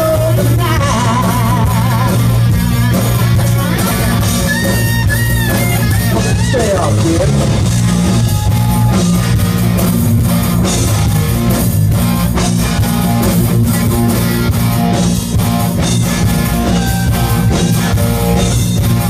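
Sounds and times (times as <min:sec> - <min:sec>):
bass guitar: 0:00.0 - 0:19.0
distorted electric guitars: 0:00.0 - 0:19.0
drum kit beat: 0:00.0 - 0:19.0.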